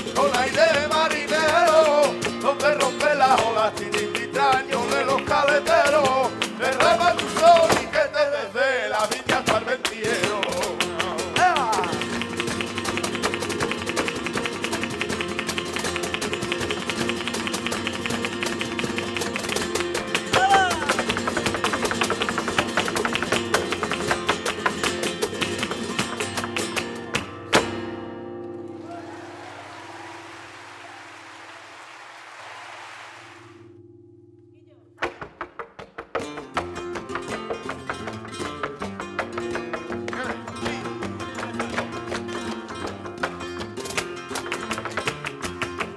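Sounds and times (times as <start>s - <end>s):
rhythmic hand-clapping: 0.0s - 8.3s, 8.9s - 27.7s, 29.4s - 33.4s, 35.1s - 45.9s
flamenco guitars: 0.0s - 31.8s, 33.2s - 45.9s
percussion: 0.0s - 32.5s, 34.5s - 45.9s
person calling out: 20.3s - 21.0s.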